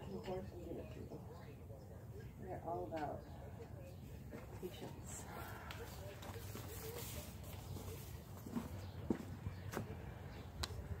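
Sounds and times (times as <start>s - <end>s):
footsteps on straw: 5.4s - 9.9s.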